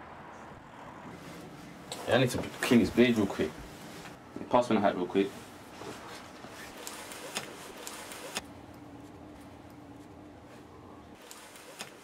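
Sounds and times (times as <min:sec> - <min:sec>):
faint steady hum: 0:07.6 - 0:11.4.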